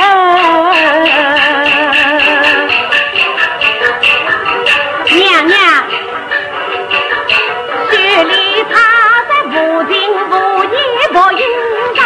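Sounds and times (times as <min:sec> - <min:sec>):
opera melody with vibrato: 0:00.0 - 0:12.0.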